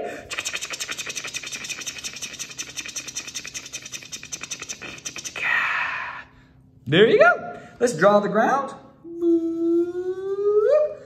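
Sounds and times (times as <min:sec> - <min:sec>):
marker scribbling on paper: 0:00.3 - 0:05.4.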